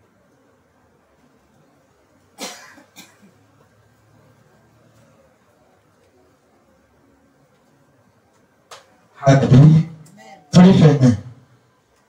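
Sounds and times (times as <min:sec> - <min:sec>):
person coughing: 0:02.4 - 0:03.3.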